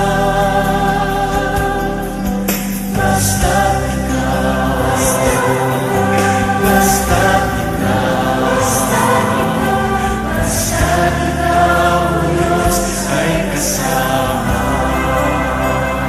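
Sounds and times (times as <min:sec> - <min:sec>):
voices singing worship song: 0:00.0 - 0:16.0.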